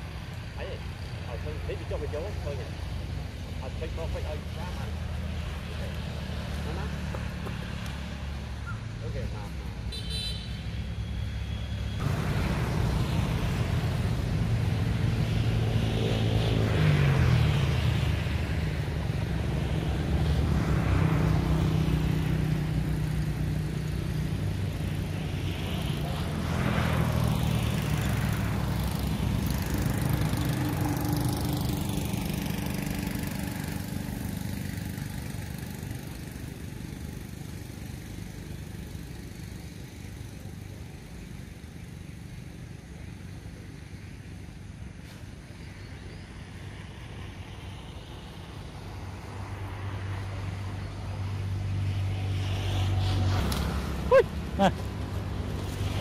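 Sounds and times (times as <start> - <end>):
vehicle engine running: 0.0 - 44.6.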